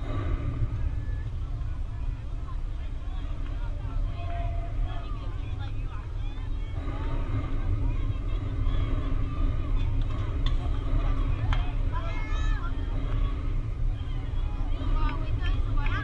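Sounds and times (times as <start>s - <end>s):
low rumble: 0.0s - 16.0s
voices calling and chatting: 0.0s - 16.0s.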